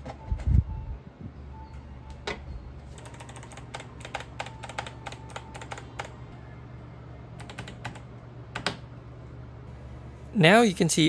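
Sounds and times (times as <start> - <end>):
keyboard keys tapped quickly: 3.0 - 6.2, 7.4 - 8.8.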